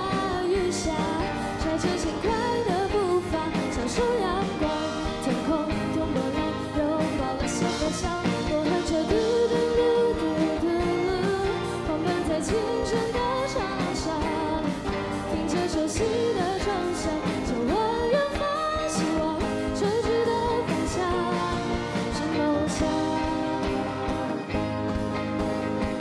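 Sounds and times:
girl singing into a microphone: 0:00.0 - 0:24.6
rock band guitars and drums: 0:00.0 - 0:26.0.

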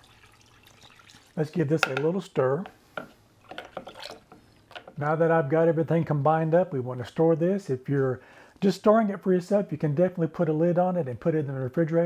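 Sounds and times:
spoon stirring liquid in pitcher: 0:00.0 - 0:02.1, 0:03.4 - 0:05.0.

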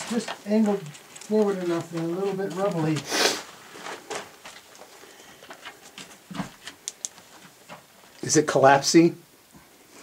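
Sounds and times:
small stones clicking: 0:00.0 - 0:02.9, 0:05.5 - 0:07.3
footsteps crunching on rubble: 0:00.0 - 0:08.2.

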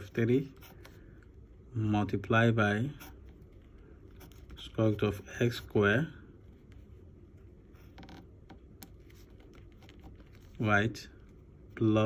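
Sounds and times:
pen scratching on paper: 0:00.4 - 0:01.0, 0:03.0 - 0:05.2.

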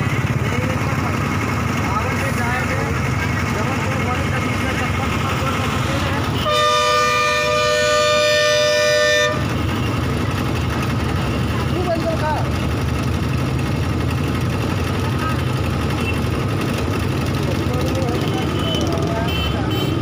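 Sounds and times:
road traffic with heavy trucks: 0:00.0 - 0:20.0
vehicle horn long blast: 0:06.4 - 0:09.5, 0:18.5 - 0:20.0.

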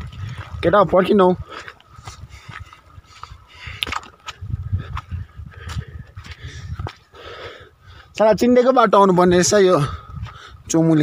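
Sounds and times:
footsteps on grass: 0:00.0 - 0:07.1
wind rumbling on microphone: 0:00.0 - 0:11.0.

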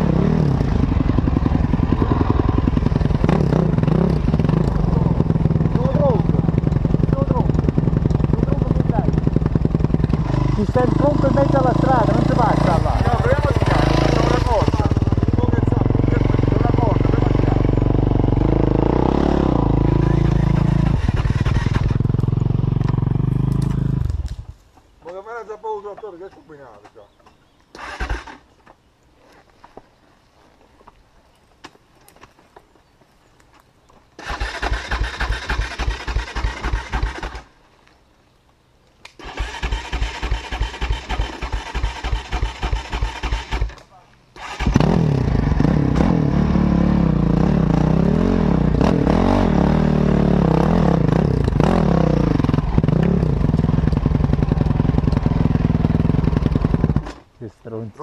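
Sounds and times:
motorcycle engine revving: 0:00.0 - 0:24.5, 0:27.8 - 0:28.5, 0:34.2 - 0:37.5, 0:39.2 - 0:43.8, 0:44.4 - 0:57.3
motorcycle engine cranking: 0:20.2 - 0:22.2, 0:27.8 - 0:28.5, 0:34.2 - 0:37.5, 0:39.2 - 0:43.8, 0:44.4 - 0:45.1.

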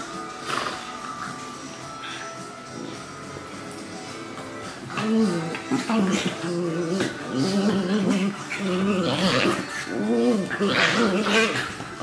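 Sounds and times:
dogs play-fighting and vocalising: 0:00.0 - 0:12.0.

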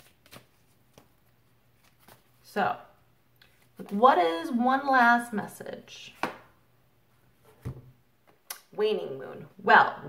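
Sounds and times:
cards shuffling: 0:00.0 - 0:02.4.

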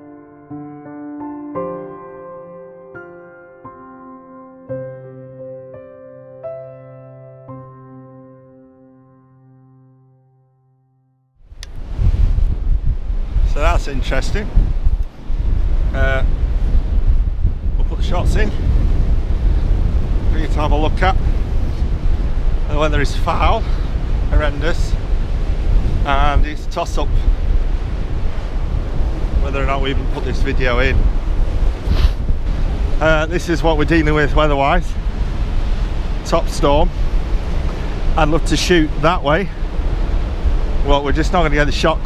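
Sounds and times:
sustained piano chords: 0:00.0 - 0:11.2
wind buffeting microphone: 0:11.4 - 0:42.0
surf breaking on beach: 0:11.6 - 0:42.0.

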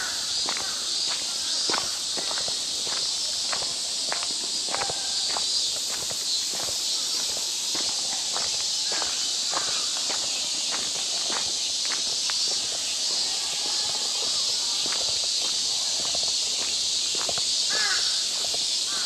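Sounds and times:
footsteps on leafy dirt path: 0:00.0 - 0:19.0
high-pitched hiss: 0:00.0 - 0:19.0.

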